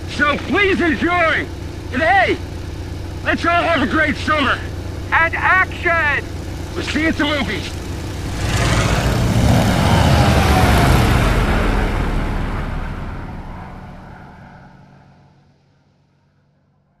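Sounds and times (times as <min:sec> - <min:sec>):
propeller plane engine: 0:00.0 - 0:16.9.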